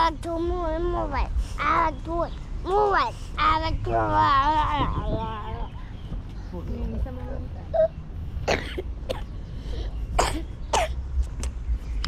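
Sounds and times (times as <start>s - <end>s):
steady low rumble: 0.0s - 12.0s
person coughing breathily: 8.4s - 9.3s.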